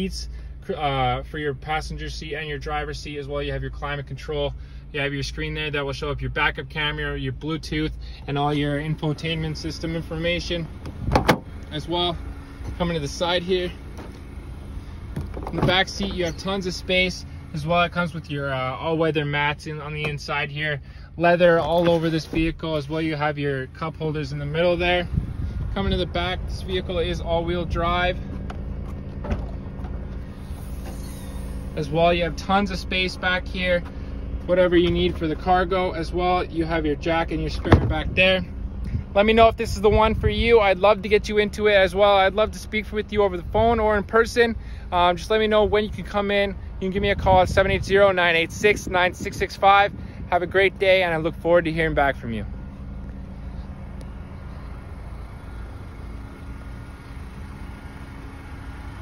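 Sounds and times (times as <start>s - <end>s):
low outdoor rumble: 0.0s - 59.0s
tailgate latch click: 10.8s - 11.5s.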